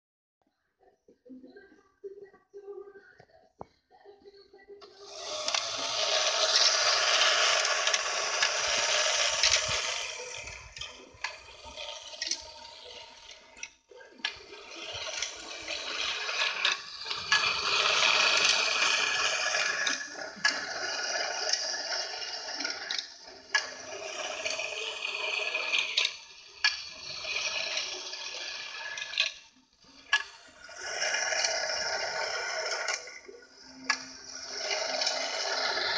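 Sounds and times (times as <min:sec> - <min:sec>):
toy elevator arm clicks: 0:04.8 - 0:35.9
toy mechanism whirring: 0:04.8 - 0:35.9
tin cars rolling and rattling: 0:04.9 - 0:35.9.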